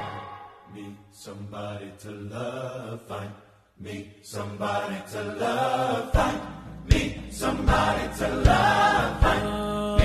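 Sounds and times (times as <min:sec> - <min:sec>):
choir singing quietly: 0:00.0 - 0:10.0.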